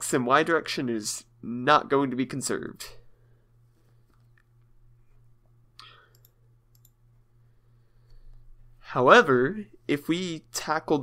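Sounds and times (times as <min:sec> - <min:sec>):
steady low hum: 0:00.0 - 0:11.0
computer mouse clicks: 0:05.8 - 0:07.0.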